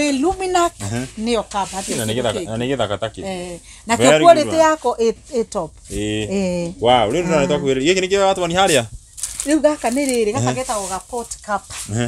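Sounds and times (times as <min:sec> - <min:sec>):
people talking: 0:00.0 - 0:08.9, 0:09.5 - 0:12.0.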